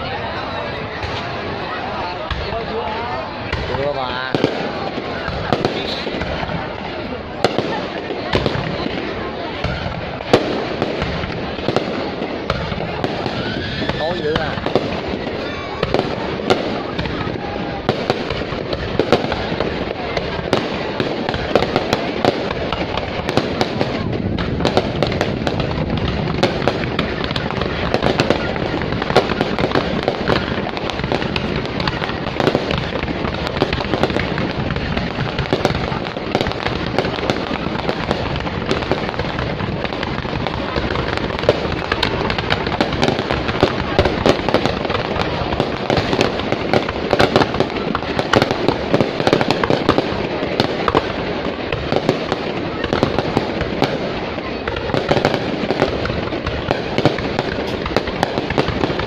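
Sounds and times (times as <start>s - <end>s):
fireworks bursts and crackling: 0.0s - 59.0s
sharp fireworks bangs: 0.0s - 59.0s.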